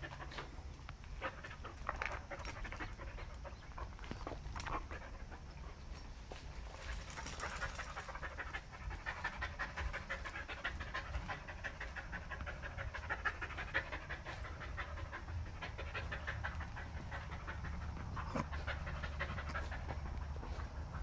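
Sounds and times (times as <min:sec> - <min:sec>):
dog panting: 0:00.0 - 0:21.0.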